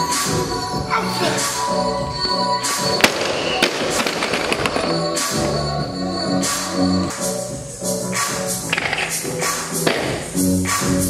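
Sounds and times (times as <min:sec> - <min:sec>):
electronic music with a beat: 0:00.0 - 0:11.0.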